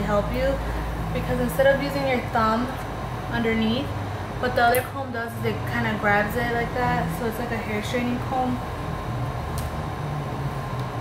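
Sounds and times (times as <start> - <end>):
air conditioner humming: 0.0 - 11.0.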